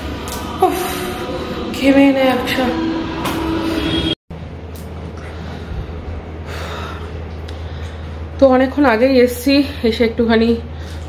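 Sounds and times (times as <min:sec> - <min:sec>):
woman speaking: 0:00.5 - 0:03.1, 0:08.4 - 0:10.7.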